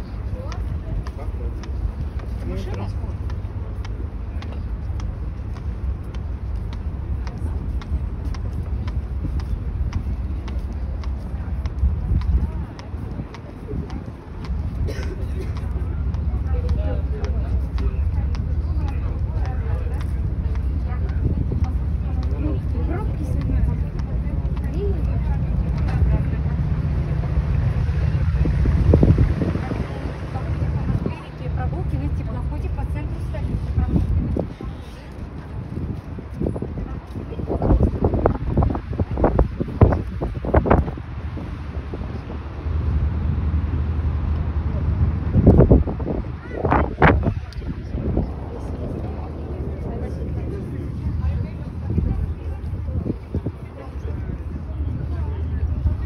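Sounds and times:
footsteps on wooden boardwalk: 0.0s - 41.9s
faint voices: 0.0s - 56.0s
low rumble: 0.0s - 56.0s
wind buffeting microphone: 0.0s - 56.0s.

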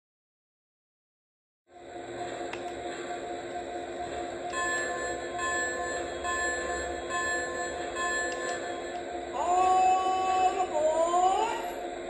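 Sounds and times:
steady low hum: 1.7s - 12.0s.

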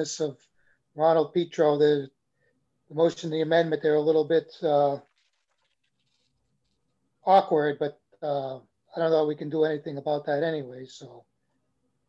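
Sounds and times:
paper rustling: 5.0s - 6.8s.

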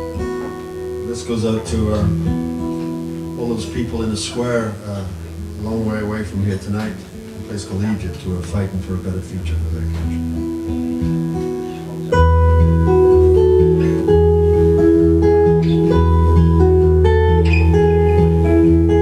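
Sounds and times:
fingerpicked acoustic guitar: 0.0s - 19.0s.

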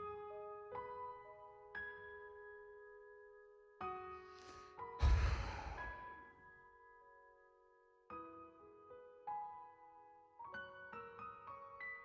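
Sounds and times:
soft piano music: 0.0s - 12.0s
heavy sigh: 5.0s - 6.1s.

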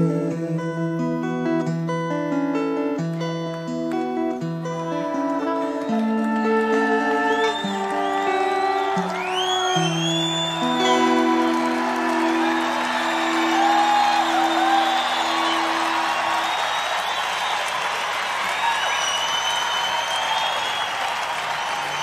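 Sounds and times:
acoustic guitar chords: 0.0s - 16.2s
crowd applauding: 4.9s - 22.0s
crowd cheering and whistling: 6.3s - 22.0s.

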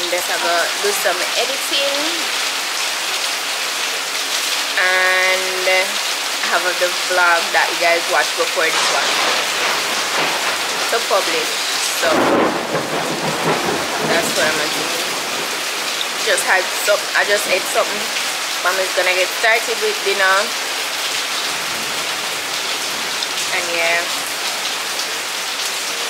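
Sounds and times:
rain falling steadily: 0.0s - 26.0s.

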